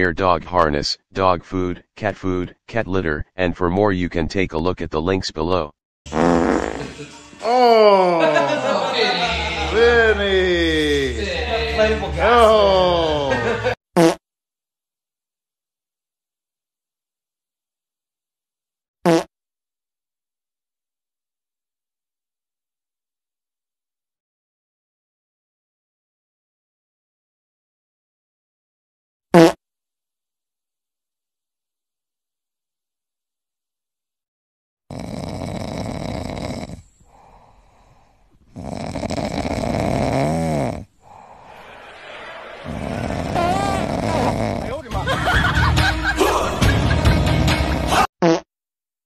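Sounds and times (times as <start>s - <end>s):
dog farting: 6.1s - 7.0s, 14.0s - 14.2s, 19.0s - 19.3s, 29.4s - 29.6s, 34.9s - 36.8s, 38.5s - 40.9s, 42.7s - 44.8s, 47.1s - 48.5s.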